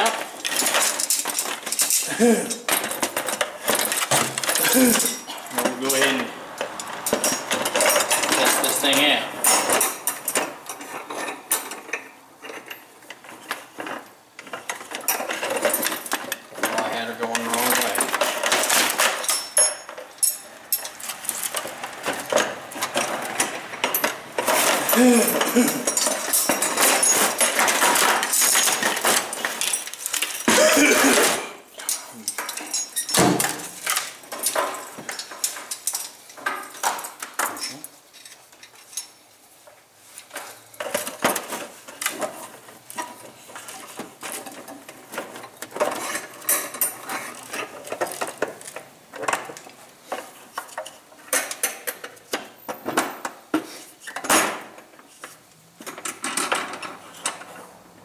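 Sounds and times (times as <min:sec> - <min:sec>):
metal trap rattling in plastic bucket: 0:00.0 - 0:12.8, 0:13.4 - 0:37.8.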